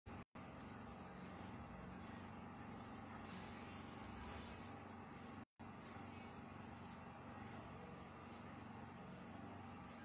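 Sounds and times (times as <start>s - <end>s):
low mechanical hum: 0.1s - 10.0s.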